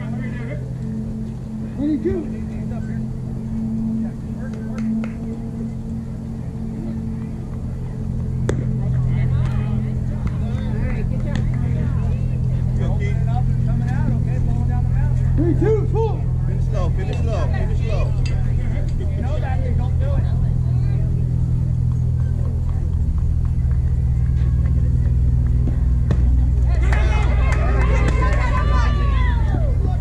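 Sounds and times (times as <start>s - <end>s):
steady low hum: 0.0s - 30.0s
people calling out: 26.6s - 30.0s.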